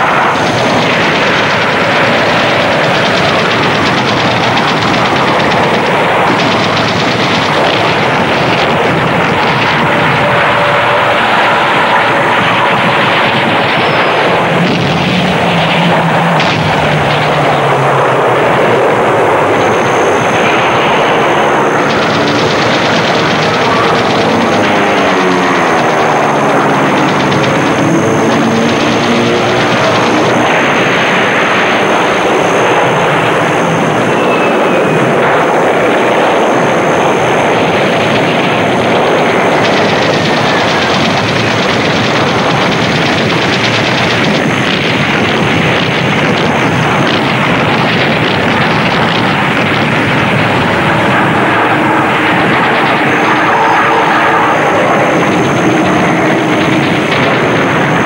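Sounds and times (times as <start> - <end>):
plane passing by: 0.0 - 41.6, 48.5 - 58.0
gunfire: 0.0 - 58.0
warplane engines: 0.0 - 58.0.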